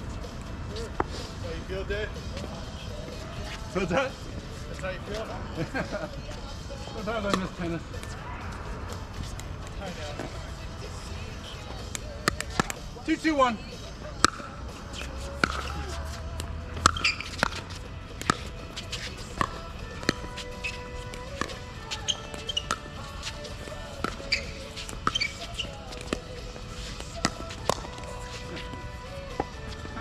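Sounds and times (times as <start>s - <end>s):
ball bouncing on hard court: 15.4s - 15.8s, 16.8s - 26.4s, 27.0s - 28.4s.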